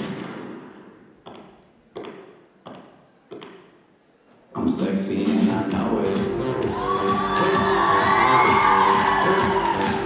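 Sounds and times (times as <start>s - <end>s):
heeled boots on wooden stage: 0.0s - 4.6s, 6.1s - 10.0s
music in a hall: 4.6s - 10.0s.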